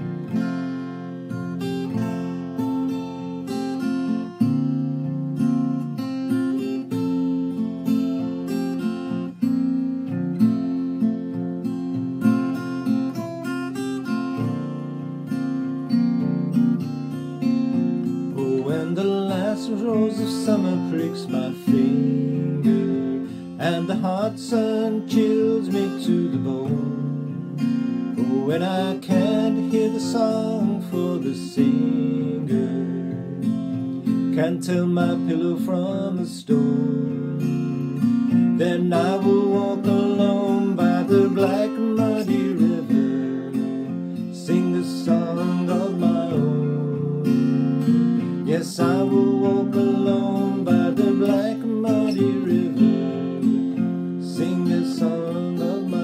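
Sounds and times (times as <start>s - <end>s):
strummed acoustic guitar: 0.0s - 56.0s
man singing: 18.3s - 37.5s, 38.5s - 56.0s.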